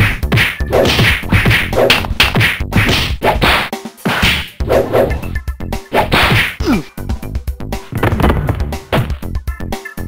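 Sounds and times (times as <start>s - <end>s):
punch whacks: 0.0s - 4.5s.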